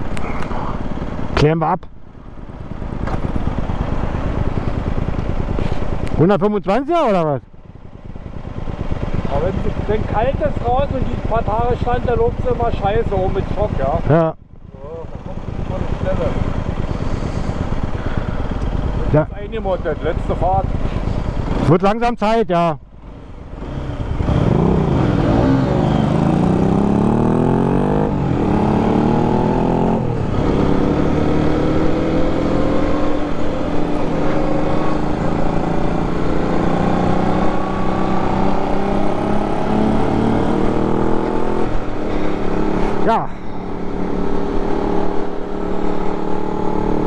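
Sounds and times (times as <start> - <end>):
motorcycle engine accelerating: 0.0 - 47.0.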